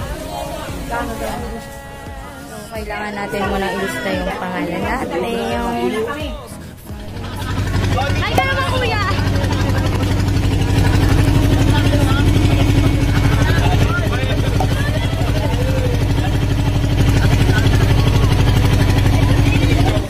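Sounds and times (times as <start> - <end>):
boat engine running: 0.0 - 20.0
passengers' voices: 0.0 - 20.0.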